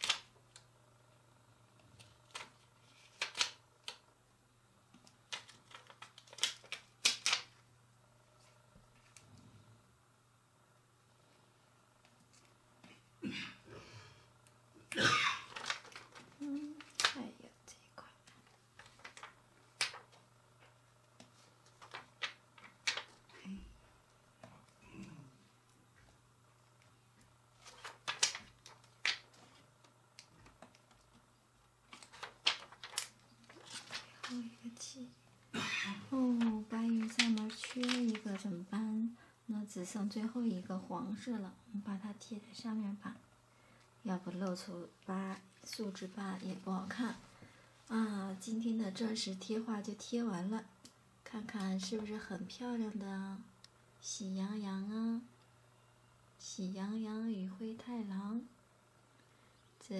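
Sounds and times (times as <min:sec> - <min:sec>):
plastic sheet crackling: 0:00.0 - 0:00.6, 0:02.0 - 0:04.0, 0:05.1 - 0:07.6, 0:15.3 - 0:17.4, 0:18.2 - 0:23.4, 0:27.6 - 0:31.2, 0:31.9 - 0:34.9, 0:36.1 - 0:38.6
faint steady hum: 0:00.0 - 0:59.9
plastic stickers clicking and tapping: 0:04.9 - 0:07.6, 0:21.2 - 0:23.2, 0:27.6 - 0:29.6, 0:31.9 - 0:34.4, 0:36.4 - 0:38.4.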